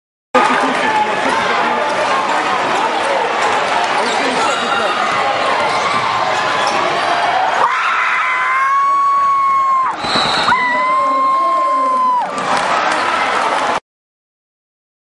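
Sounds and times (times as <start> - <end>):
crowd voices: 0.4 - 13.8.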